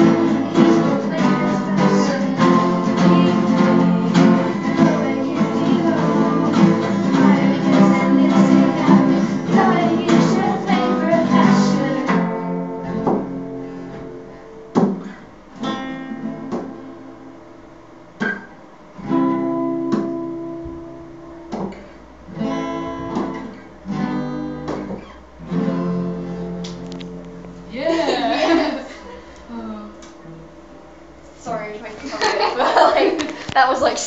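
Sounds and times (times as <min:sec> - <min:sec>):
acoustic guitars strumming chords: 0:00.0 - 0:34.0.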